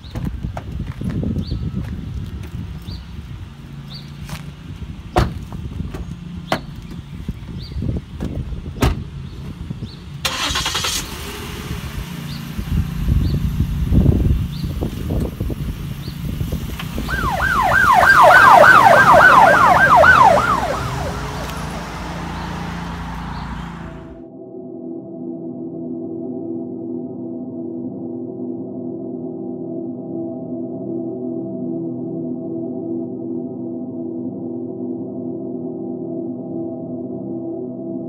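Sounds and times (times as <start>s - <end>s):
car engine pulling away: 2.2s - 24.2s
car doors shutting: 5.1s - 9.6s
police yelp siren: 17.0s - 24.2s.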